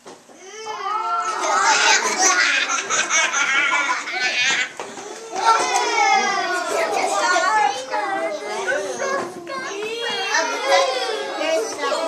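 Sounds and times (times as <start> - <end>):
young children talking: 0.4 - 12.0.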